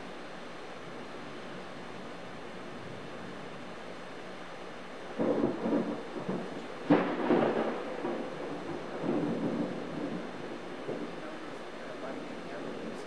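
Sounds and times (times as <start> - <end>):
rain hissing: 0.0 - 13.0
thunder rumbling: 5.1 - 13.0
sharp thunder crack: 5.2 - 11.2.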